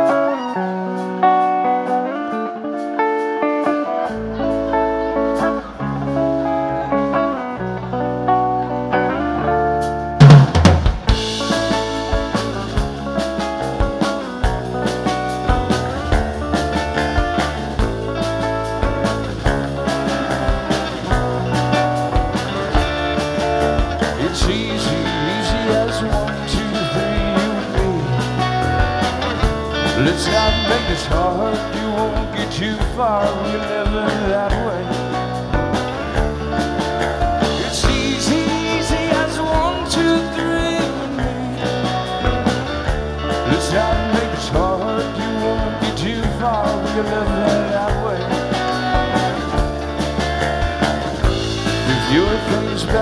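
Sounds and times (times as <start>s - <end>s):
electric guitar: 0.0s - 53.0s
low bass line: 4.1s - 53.0s
drum kit: 8.1s - 53.0s.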